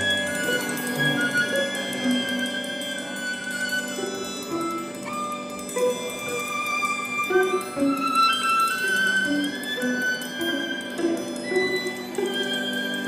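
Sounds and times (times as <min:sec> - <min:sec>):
string quartet playing: 0:00.0 - 0:13.0.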